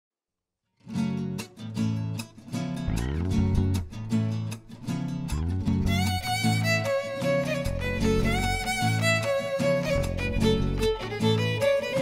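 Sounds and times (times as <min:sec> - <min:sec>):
acoustic guitars strumming chords: 0:00.9 - 0:12.0.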